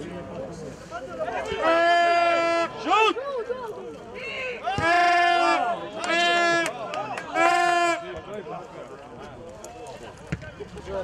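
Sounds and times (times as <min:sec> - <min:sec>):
faint shouting voices: 0:00.9 - 0:11.0.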